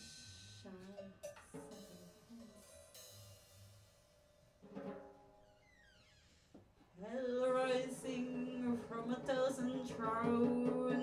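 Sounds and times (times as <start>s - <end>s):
light cymbal washes: 0.0s - 4.6s.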